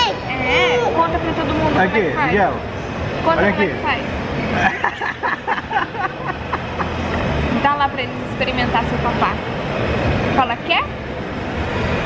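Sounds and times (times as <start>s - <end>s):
shopping mall hum: 0.0s - 12.0s
woman laughing: 4.5s - 7.1s.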